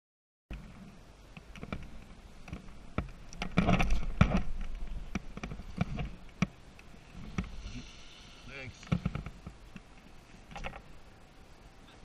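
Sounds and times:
sharp clicks and knocks: 1.3 - 7.6, 8.8 - 10.9
skis sliding over snow: 7.0 - 9.5.

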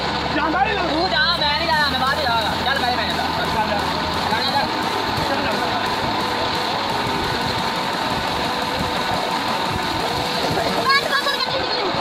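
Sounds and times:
machine hum: 0.0 - 12.0
water gushing into a tank: 0.0 - 12.0.

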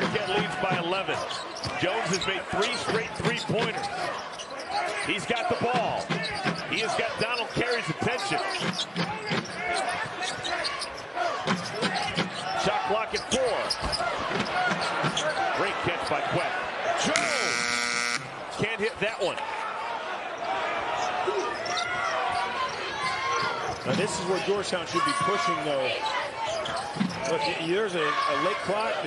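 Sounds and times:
crowd noise: 0.0 - 29.0
sneakers squeaking: 0.1 - 16.4, 21.0 - 25.3, 25.9 - 28.6
shot-clock buzzer: 17.2 - 18.3.

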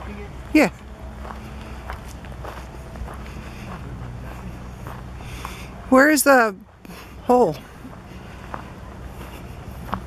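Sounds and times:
footsteps on pine needles: 1.1 - 5.6.

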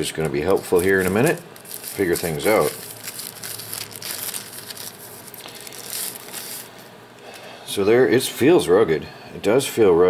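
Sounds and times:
plastic bag crinkling: 0.2 - 6.9.

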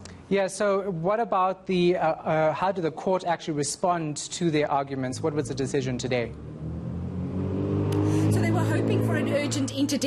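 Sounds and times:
low engine hum: 5.0 - 10.0.

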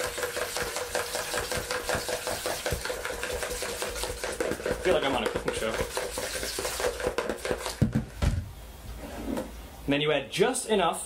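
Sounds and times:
stirring scrapes in a bowl: 0.0 - 7.8.

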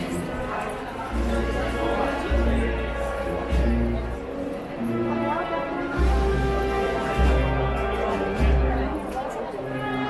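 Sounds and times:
crowd chatter: 0.0 - 10.0
wind band playing a march: 4.8 - 10.0.

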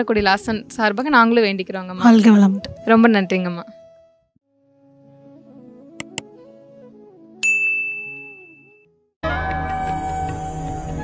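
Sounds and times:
soft background music: 0.0 - 7.4
bright bell-like ding: 7.4 - 8.8.

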